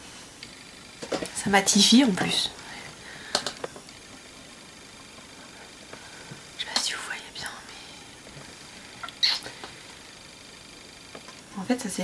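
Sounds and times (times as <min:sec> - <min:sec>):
steady low hiss: 0:00.0 - 0:12.0
person whispering: 0:06.6 - 0:08.0.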